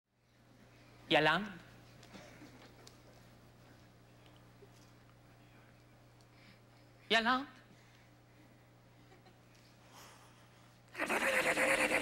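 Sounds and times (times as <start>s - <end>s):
faint hum: 0.1s - 12.0s.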